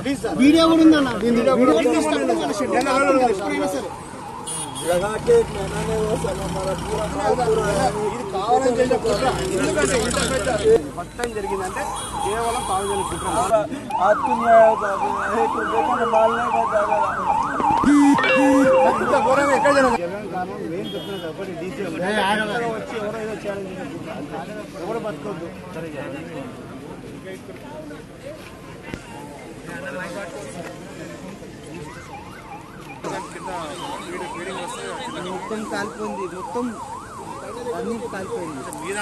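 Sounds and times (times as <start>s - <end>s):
crowd voices: 5.4s - 39.0s
siren yelping: 11.5s - 20.0s, 31.9s - 39.0s
low horn honks: 17.8s - 19.6s.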